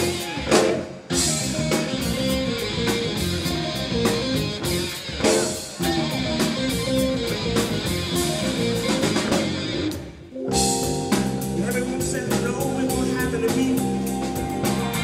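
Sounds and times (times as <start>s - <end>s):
rhythm and blues band playing: 0.0s - 15.0s.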